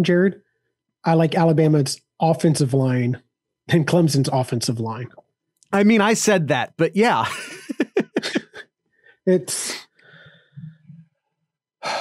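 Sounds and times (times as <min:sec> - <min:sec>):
man laughing: 0:05.8 - 0:08.6
breath out: 0:09.0 - 0:10.8.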